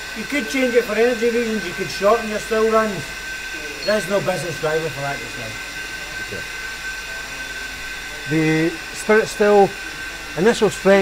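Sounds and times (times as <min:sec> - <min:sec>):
high-pitched whine: 0:00.0 - 0:11.0
machinery hum: 0:00.0 - 0:11.0.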